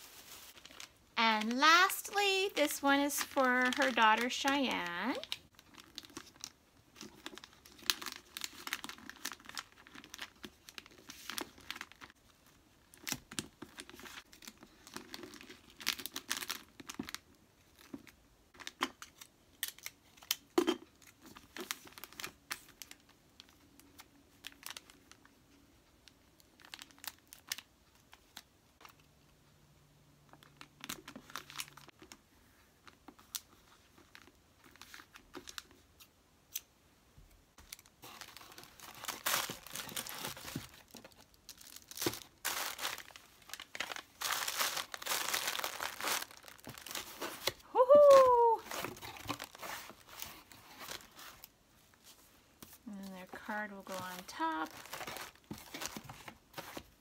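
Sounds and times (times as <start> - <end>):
wrapping paper crinkling: 0.0 - 20.4, 21.0 - 25.4, 26.0 - 29.0, 30.3 - 35.8, 37.6 - 57.0.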